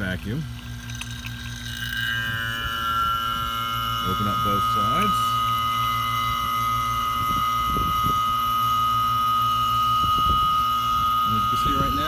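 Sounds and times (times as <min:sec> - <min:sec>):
high pump whine: 0:00.0 - 0:12.0
vacuum pump humming: 0:00.0 - 0:12.0.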